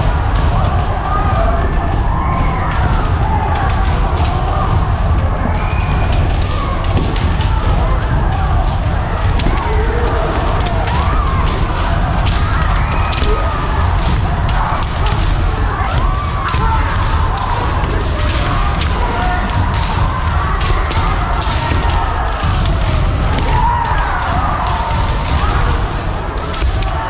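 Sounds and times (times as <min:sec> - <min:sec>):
low rumble of crowded hall: 0:00.0 - 0:27.0
many voices shouting: 0:00.0 - 0:27.0.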